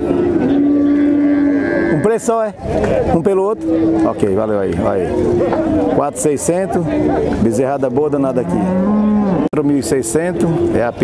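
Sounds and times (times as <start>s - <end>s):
cow mooing: 0.0s - 2.5s, 3.5s - 6.1s, 8.2s - 11.0s.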